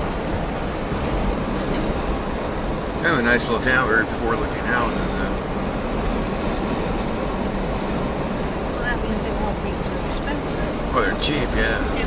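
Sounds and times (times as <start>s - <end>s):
car road noise from inside: 0.0s - 12.0s.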